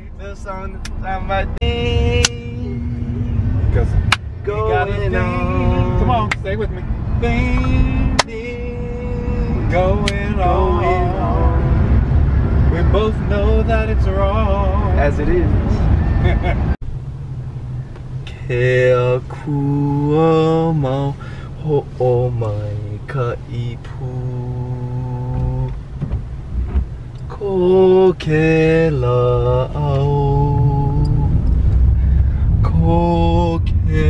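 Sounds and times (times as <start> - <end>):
car road and engine noise: 0.0 - 34.0
low rumble: 0.0 - 34.0.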